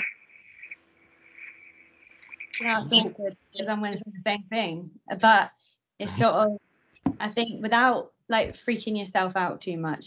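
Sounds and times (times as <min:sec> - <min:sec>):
faint high-pitched whine: 0:02.2 - 0:05.3
faint low hum: 0:02.2 - 0:05.4.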